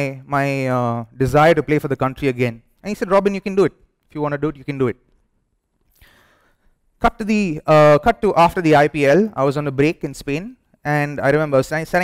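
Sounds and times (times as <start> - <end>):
breath into a microphone: 5.9 - 6.8.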